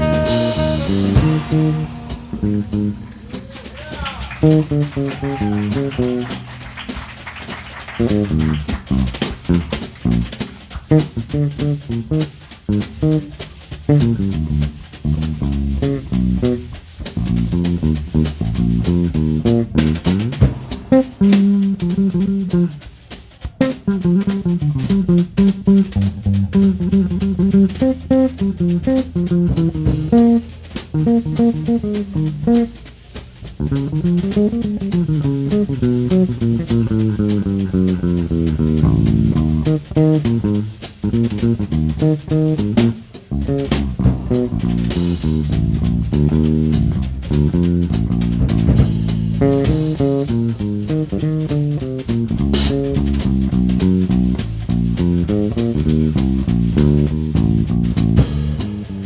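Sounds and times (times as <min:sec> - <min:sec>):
drum kit: 0:00.0 - 0:59.0
electric bass guitar melody: 0:00.0 - 0:59.0.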